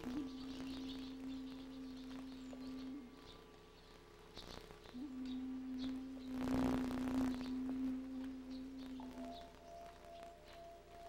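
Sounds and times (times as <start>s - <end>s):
ambient music of held tones: 0.0s - 11.0s.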